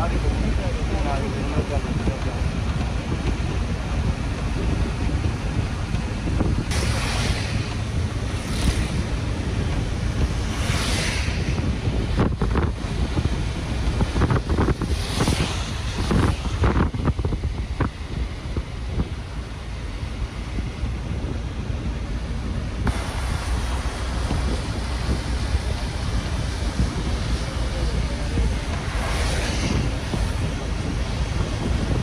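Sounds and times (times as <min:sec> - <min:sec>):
tyres and wind rumble: 0:00.0 - 0:32.0
wet road rushing hiss: 0:00.0 - 0:32.0.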